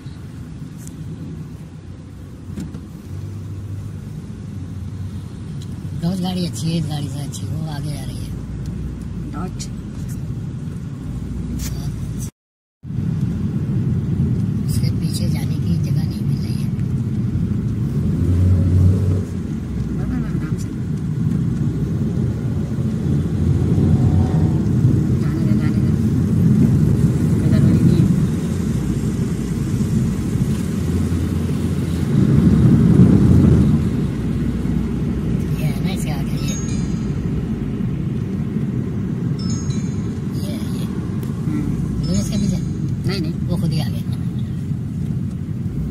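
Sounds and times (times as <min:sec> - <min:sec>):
road and engine rumble: 0:00.0 - 0:45.9.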